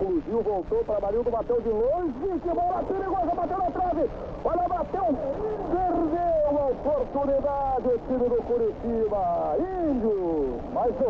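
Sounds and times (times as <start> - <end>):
broadcast background noise: 0.0 - 11.0
excited football commentator: 0.0 - 11.0.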